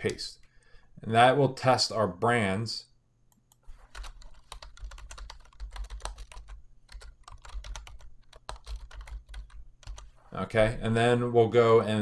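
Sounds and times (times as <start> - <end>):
typing on keyboard: 3.9 - 10.1.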